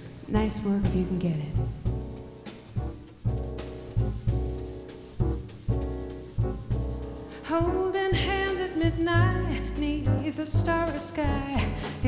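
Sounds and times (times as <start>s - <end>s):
upright bass and piano jazz: 0.0s - 12.0s.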